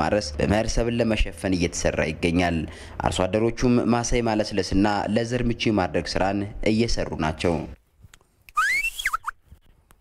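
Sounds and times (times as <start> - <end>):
man whistling a high call: 8.5 - 9.4.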